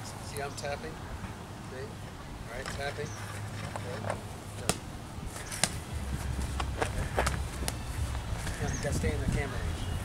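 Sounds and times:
low steady rumble: 0:04.2 - 0:10.0
punches slapping focus mitts: 0:04.6 - 0:04.8, 0:05.5 - 0:05.8.

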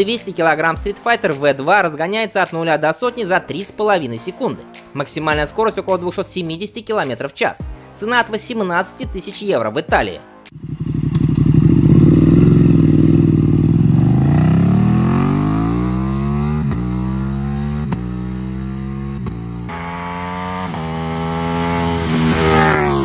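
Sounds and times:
motorcycle engine accelerating: 0:10.6 - 0:23.0.

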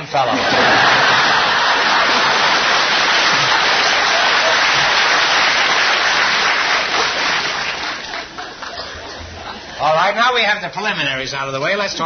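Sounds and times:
studio audience laughing: 0:00.2 - 0:09.8
audience applauding: 0:00.4 - 0:09.1.

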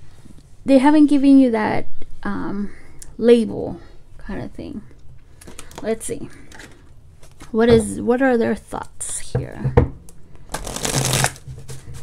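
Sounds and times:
cards shuffled by hand: 0:10.5 - 0:12.0.

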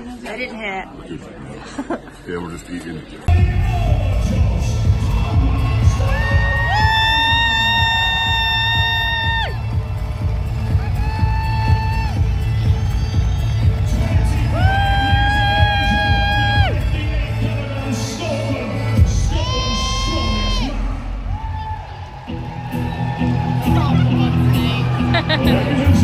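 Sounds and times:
crowd cheering: 0:03.3 - 0:26.0
loud arena music with heavy bass: 0:03.3 - 0:26.0.

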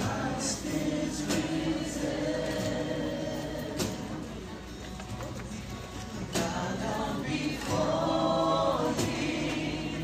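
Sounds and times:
many voices singing along: 0:00.0 - 0:04.4, 0:06.2 - 0:10.0
singer leading worship song: 0:00.0 - 0:04.5, 0:06.2 - 0:10.0.

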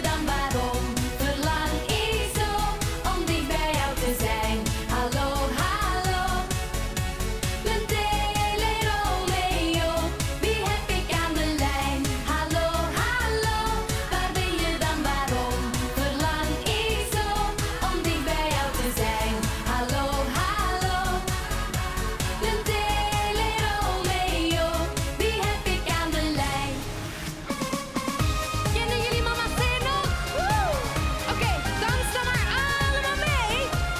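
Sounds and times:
female vocal group singing: 0:00.0 - 0:06.8, 0:07.5 - 0:27.2, 0:28.7 - 0:33.9
dance-pop backing track: 0:00.0 - 0:33.9.

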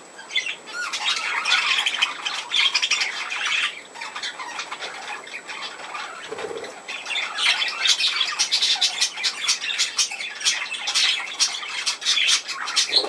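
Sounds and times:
budgerigars chattering: 0:00.2 - 0:13.0.

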